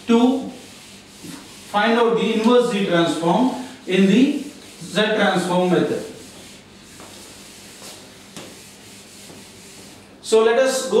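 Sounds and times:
eraser rubbing on whiteboard: 0.3 - 1.8, 3.8 - 10.0.

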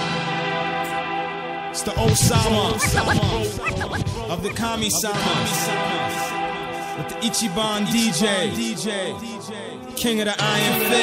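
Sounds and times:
turntable scratching: 1.8 - 6.2
hip-hop beat: 1.8 - 11.0.

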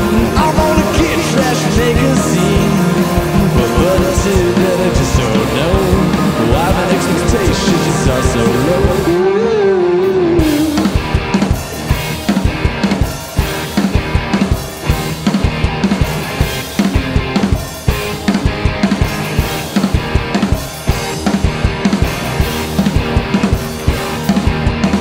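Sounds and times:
drum kit beat: 0.0 - 9.3, 10.1 - 25.0
bass guitar: 0.0 - 25.0
electric guitars: 0.0 - 25.0
held note bending in pitch: 7.4 - 11.2.

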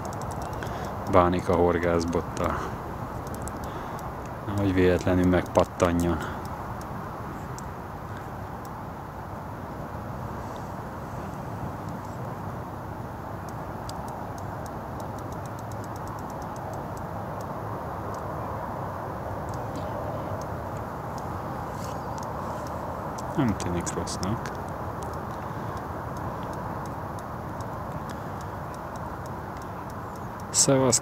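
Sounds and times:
steady rushing noise: 0.0 - 31.0.

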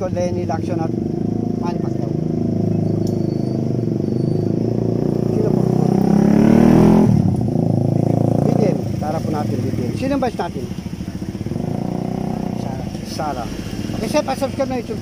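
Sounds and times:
vehicle engine revving: 0.0 - 15.0.

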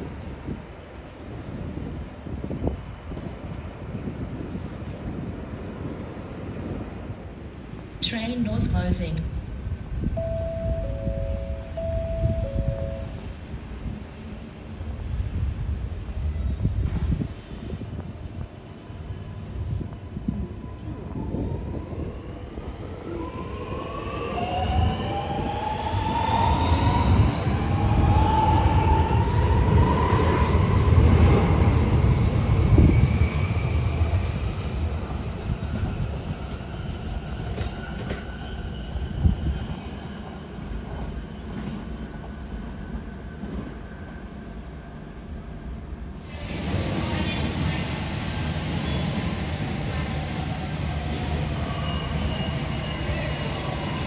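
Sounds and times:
station and train noise: 0.0 - 54.0.

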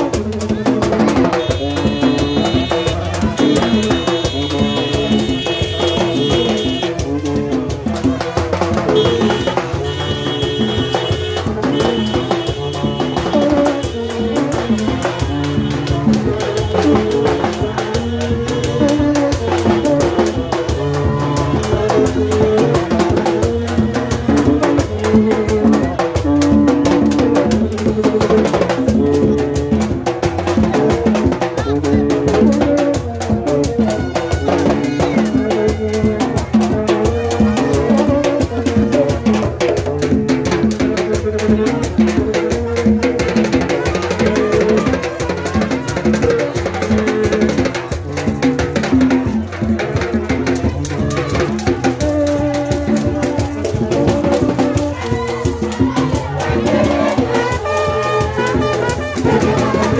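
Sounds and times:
hand drums: 0.0 - 59.9
horns and trumpets blowing: 0.0 - 59.9
shaken and scraped percussion: 0.0 - 59.9.

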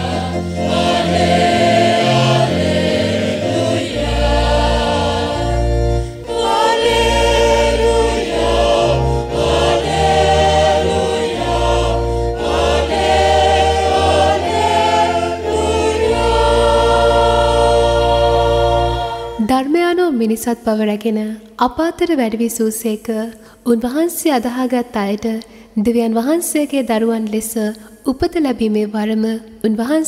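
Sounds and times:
choir singing a hymn: 0.0 - 19.6
low held accompaniment: 0.0 - 19.8.

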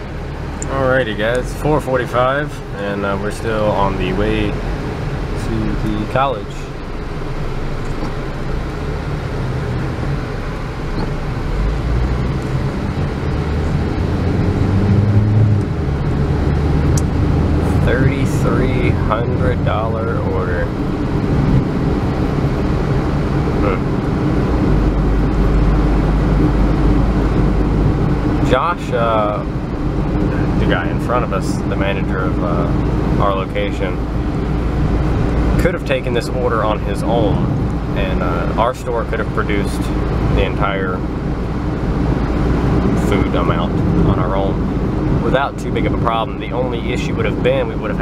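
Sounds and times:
car engine and road rumble: 0.0 - 48.0.

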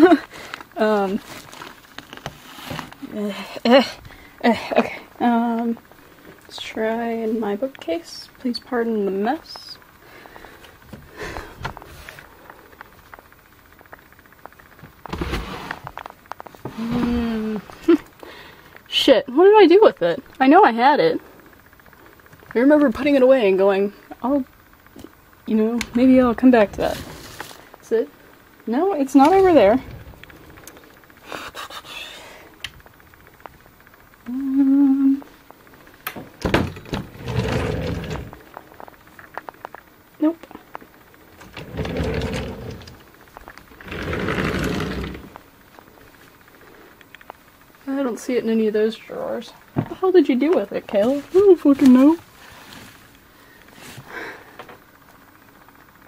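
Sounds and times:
rustling and sliding of contents: 0.3 - 3.3, 10.6 - 12.3, 14.8 - 18.0, 25.7 - 28.4, 36.6 - 39.8, 41.4 - 46.4, 50.9 - 54.1
books and papers rustling: 0.5 - 3.1, 25.9 - 27.8, 51.0 - 54.1
low hum: 20.0 - 47.9
woman humming: 34.2 - 35.3.

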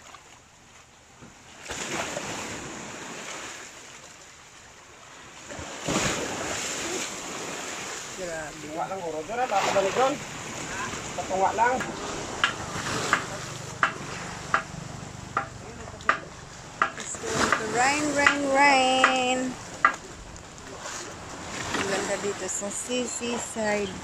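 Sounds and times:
waves washing against shore: 0.0 - 24.0.

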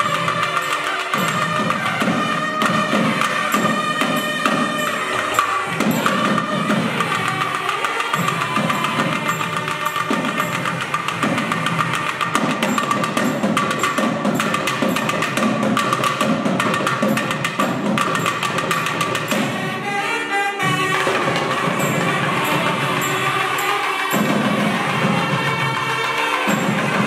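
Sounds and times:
drums in fast dense rhythm: 20.6 - 25.8, 26.5 - 27.0.

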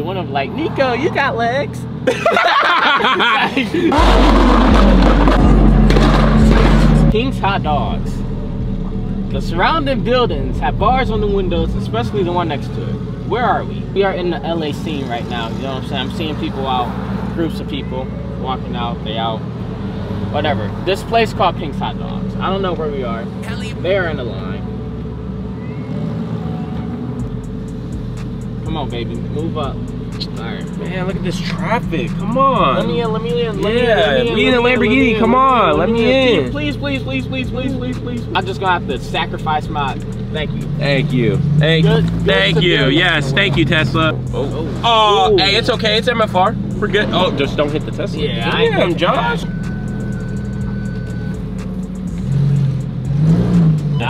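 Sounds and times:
car engine running at low revs: 3.8 - 16.8, 19.6 - 54.0.

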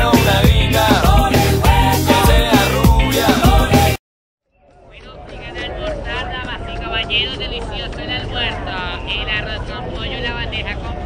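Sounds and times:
many voices talking: 4.6 - 11.0.

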